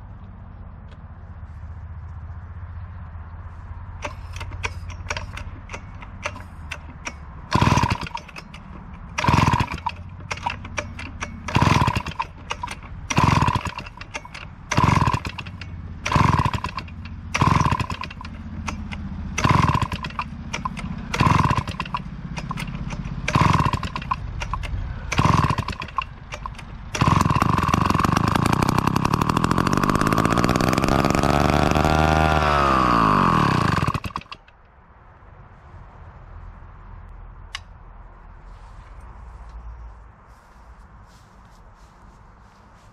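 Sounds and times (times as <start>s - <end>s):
chainsaw engine running: 4.0s - 34.5s
chainsaw starter cord pulls: 4.0s - 34.6s.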